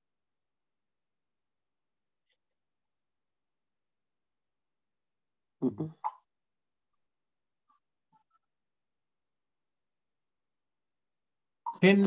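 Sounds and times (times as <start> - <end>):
person saying mm-hmm: 5.6 - 6.0.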